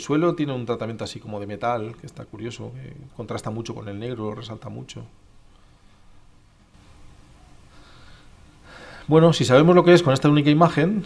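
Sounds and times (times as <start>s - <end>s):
intake of breath: 7.6s - 9.1s
man breathing into microphone: 7.7s - 9.1s.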